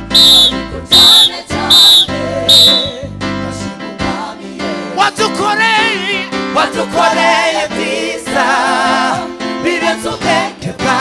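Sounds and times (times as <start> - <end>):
shrill whistle blasts: 0.0 - 3.0
gospel choir and band music: 0.0 - 11.0.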